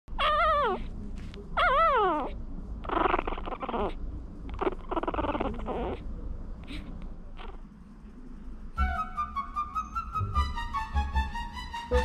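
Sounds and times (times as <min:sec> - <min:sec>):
puppies whining: 0:00.1 - 0:00.9, 0:01.6 - 0:06.0.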